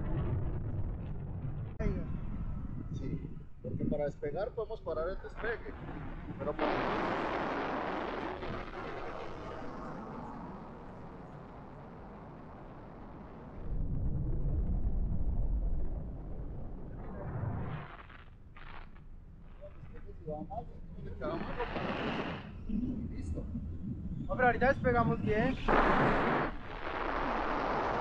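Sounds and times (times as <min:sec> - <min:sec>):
wind rushing over microphone: 0:00.0 - 0:18.1, 0:19.7 - 0:28.0.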